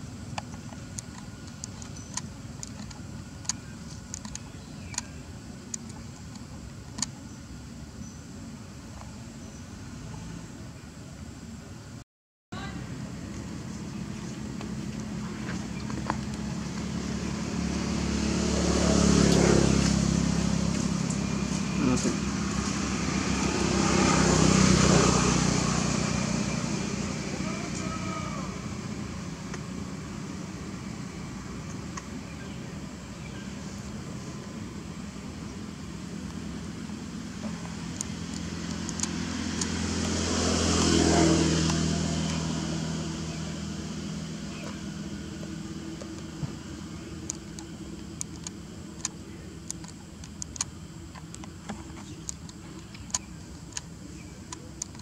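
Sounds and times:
steady background hum: 0.0s - 12.0s, 12.6s - 55.0s
motor vehicles passing: 12.6s - 55.0s.

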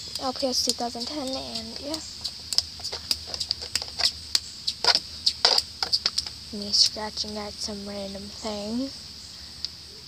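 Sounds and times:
scratching on a hard surface: 0.0s - 6.4s.

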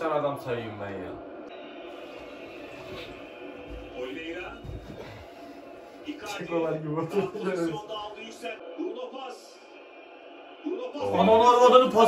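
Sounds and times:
stadium crowd noise: 0.0s - 12.0s
commentator's voice on television: 6.0s - 9.7s, 10.6s - 12.0s.

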